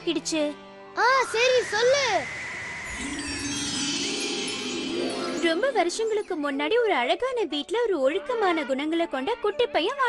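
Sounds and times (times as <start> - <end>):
magic sparkle tinkle: 1.2 - 6.7.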